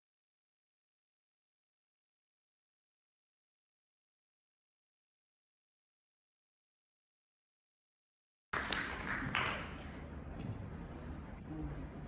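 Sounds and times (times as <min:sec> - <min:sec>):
low room noise: 0:08.6 - 0:12.0.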